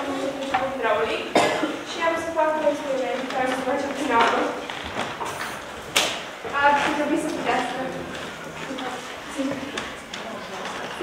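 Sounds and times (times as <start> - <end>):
girl speaking into a microphone: 0.0 - 4.7, 6.5 - 8.0, 8.6 - 9.9.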